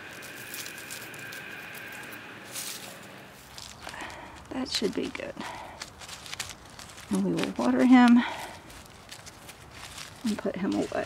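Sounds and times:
hands patting soil and leaves: 0.0 - 11.0.

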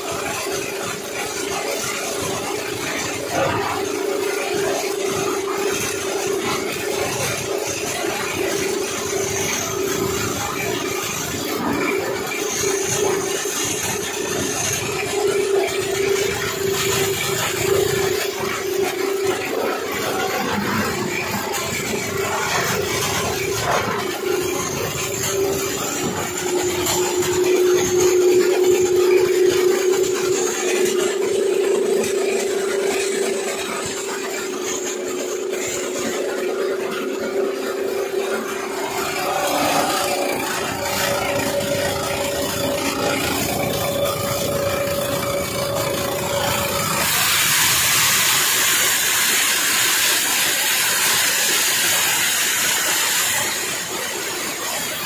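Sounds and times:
machine hum: 0.0 - 55.0
plastic crunching in grinder: 0.0 - 55.0
higher machine tone: 2.0 - 50.0.

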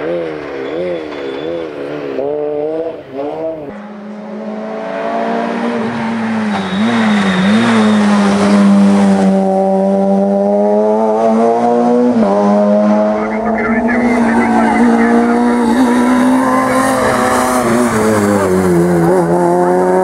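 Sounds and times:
rally car engine revving high: 1.7 - 20.0.

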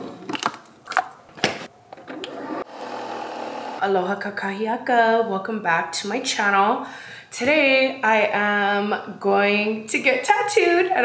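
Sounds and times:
coffee maker pump humming: 2.1 - 3.8.

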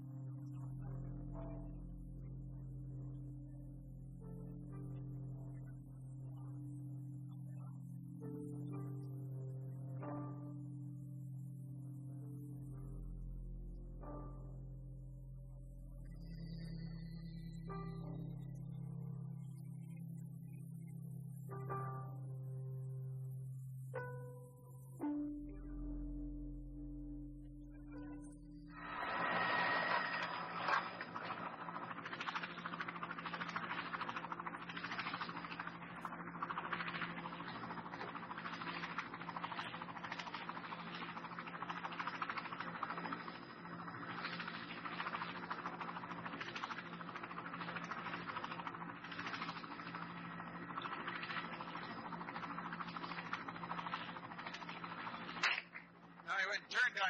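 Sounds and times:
constant low hum: 0.0 - 57.0
rough mechanical drone: 25.9 - 57.0.

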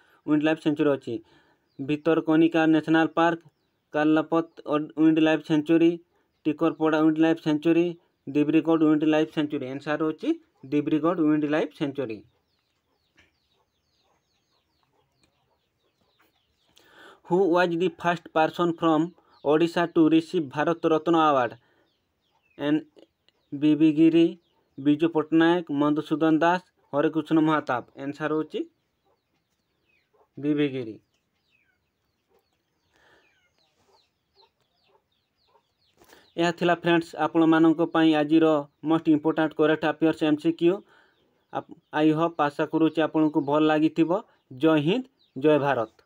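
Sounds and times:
faint bird chirps: 0.0 - 46.0.

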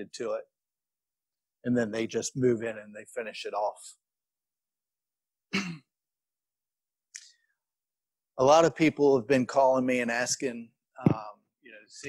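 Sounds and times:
man clearing throat: 5.5 - 6.0.

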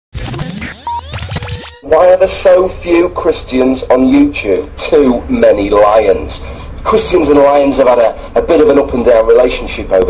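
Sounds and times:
record scratches: 0.1 - 1.8
rising pitch sweeps: 0.2 - 1.9.

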